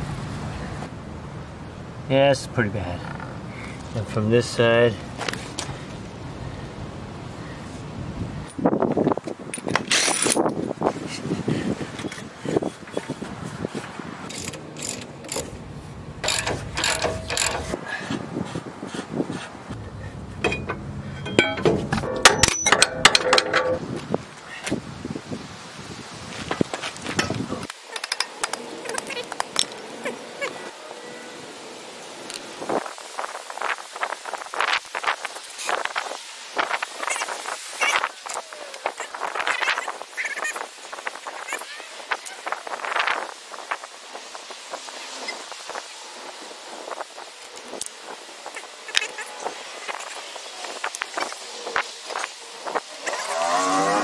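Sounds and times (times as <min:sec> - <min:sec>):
metallic clicks and clanks: 0:14.3 - 0:15.6, 0:16.2 - 0:17.8, 0:20.4 - 0:23.8.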